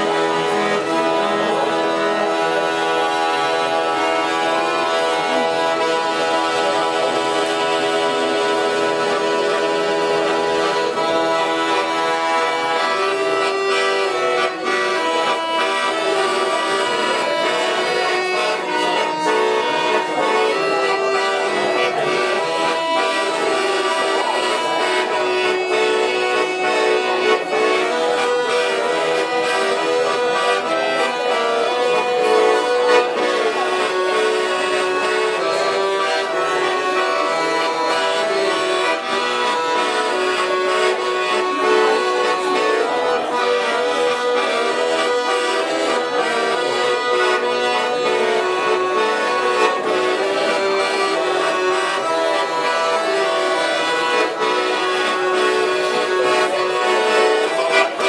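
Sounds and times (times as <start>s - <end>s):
piano accordion playing a waltz: 0.0s - 58.0s.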